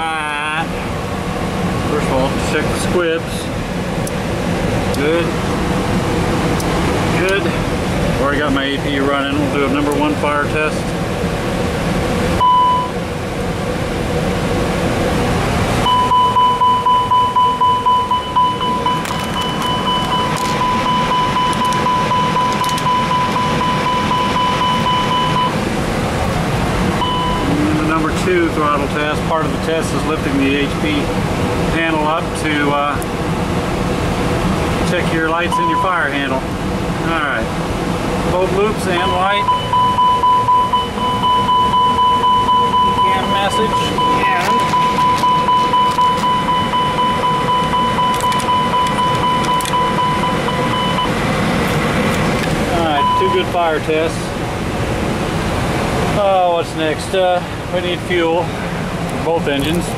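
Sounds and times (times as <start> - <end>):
ventilation hum: 0.0 - 59.9
cockpit fire warning tone: 1.7 - 10.8, 11.4 - 33.2, 33.9 - 37.2, 38.2 - 54.2.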